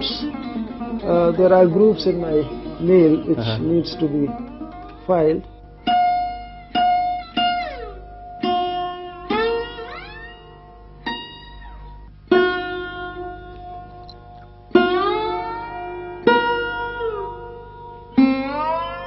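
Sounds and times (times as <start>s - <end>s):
sarod notes plucked and sliding: 0.0s - 19.0s.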